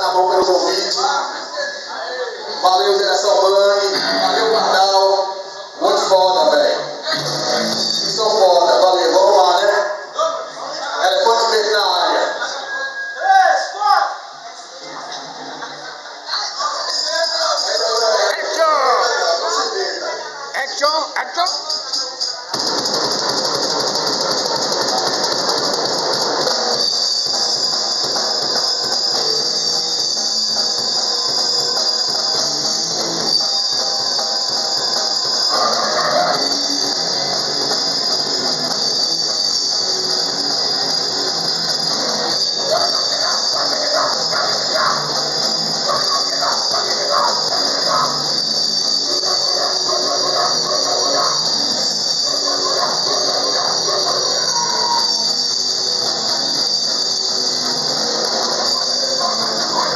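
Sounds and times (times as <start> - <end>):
high-pitched squeal: 0.0 - 20.4, 21.6 - 59.9.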